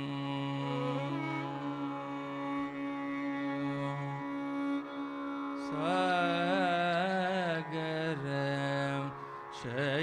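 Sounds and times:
man singing ornamented melody: 0:00.0 - 0:02.6, 0:05.6 - 0:10.0.

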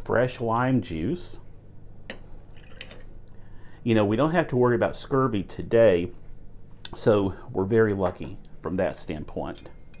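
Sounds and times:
juice trickling into jar: 0:02.5 - 0:03.1.

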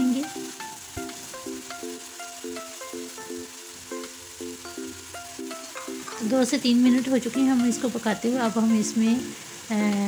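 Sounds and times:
background music: 0:00.0 - 0:10.0
food sizzling in a wok: 0:00.0 - 0:10.0.

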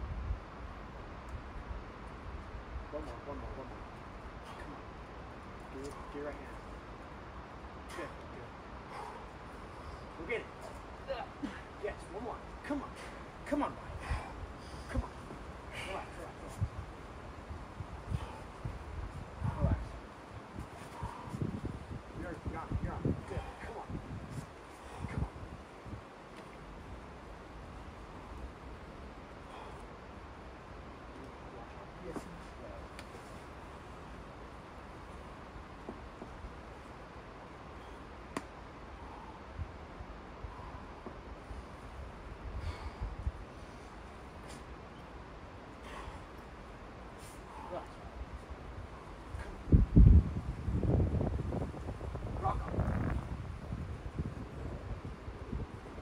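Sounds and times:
wind buffeting microphone: 0:00.0 - 0:29.6, 0:38.8 - 0:44.8, 0:45.4 - 0:56.0.

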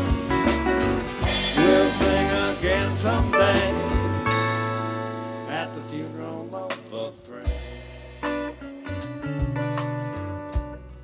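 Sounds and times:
acoustic guitar strummed chords: 0:00.0 - 0:11.0
deep bass note: 0:00.0 - 0:11.0.

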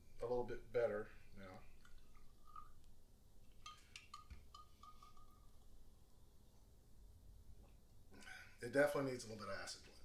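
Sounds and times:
glassware clinking: 0:03.5 - 0:05.7.

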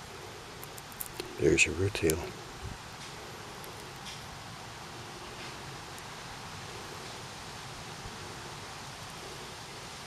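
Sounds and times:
outdoor ambience hiss: 0:00.0 - 0:10.0.

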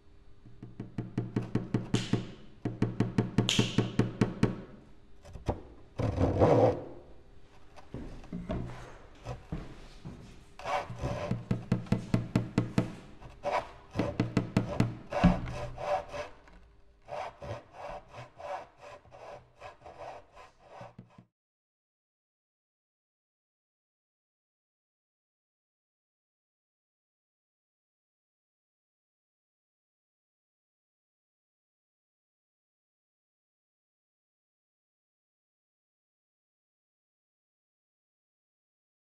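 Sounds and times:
hand saw cutting wood: 0:06.0 - 0:06.9, 0:10.6 - 0:12.2, 0:12.8 - 0:21.3.

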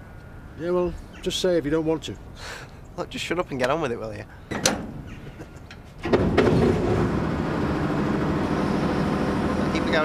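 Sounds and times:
diesel engine starting and running: 0:06.0 - 0:10.0.

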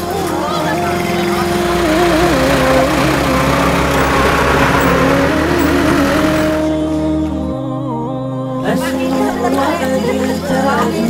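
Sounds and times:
bus or truck noise: 0:00.0 - 0:07.6
sung melody with low backing: 0:00.0 - 0:11.0.

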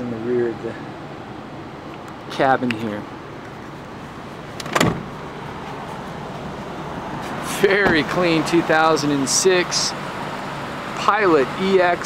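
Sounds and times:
outdoor background noise: 0:00.0 - 0:12.0
solid thump: 0:04.6 - 0:05.1, 0:07.8 - 0:08.1.

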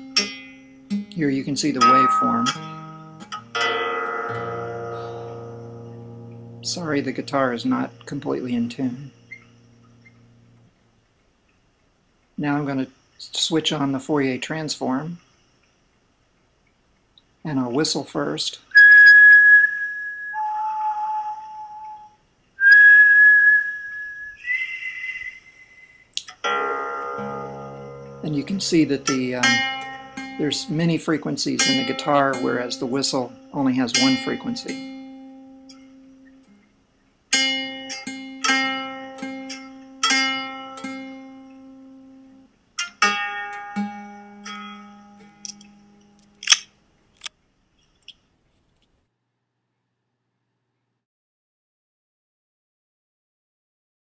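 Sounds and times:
guitar string plucked: 0:00.0 - 0:10.7, 0:26.2 - 0:36.6, 0:37.3 - 0:42.2, 0:42.8 - 0:46.6
person whistling: 0:18.8 - 0:26.2.

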